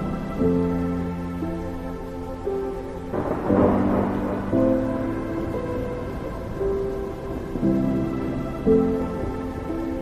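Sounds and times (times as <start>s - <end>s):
background music of held notes: 0.0s - 10.0s
thunder: 2.9s - 10.0s.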